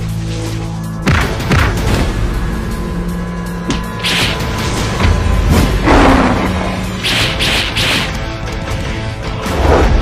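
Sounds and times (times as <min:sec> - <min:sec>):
dramatic background music: 0:00.0 - 0:10.0.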